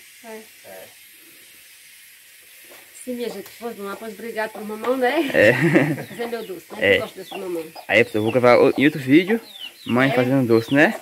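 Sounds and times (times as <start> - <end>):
steady faint hiss: 0.0 - 11.0.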